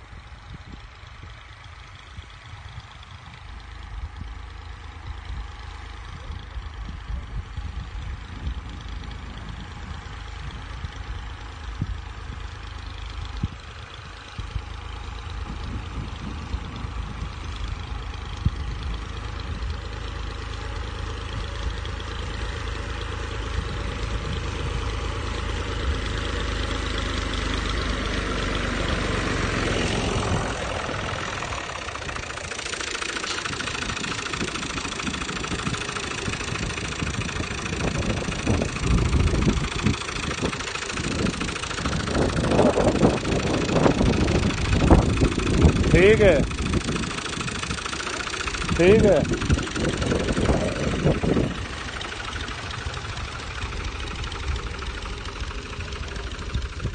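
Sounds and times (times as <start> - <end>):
tractor diesel engine running: 0.0 - 56.9.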